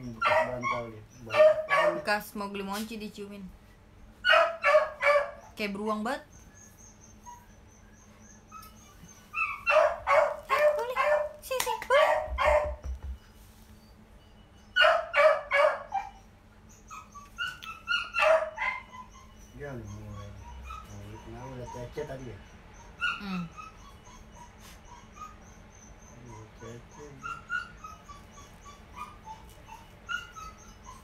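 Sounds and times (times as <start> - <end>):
small dog barking: 0.0 - 2.2, 4.2 - 5.6, 9.4 - 12.8, 14.8 - 16.2, 17.0 - 22.2.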